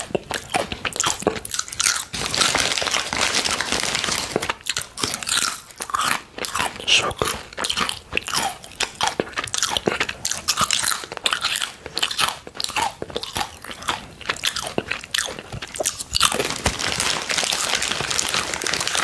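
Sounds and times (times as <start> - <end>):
crisp chip crunching: 0.0 - 19.0.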